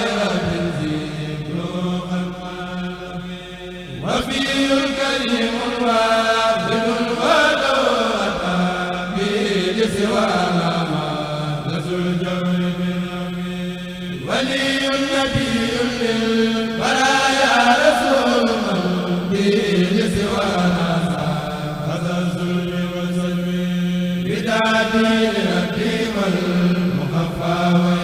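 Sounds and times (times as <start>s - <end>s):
men chanting religious verse: 0.0s - 28.0s.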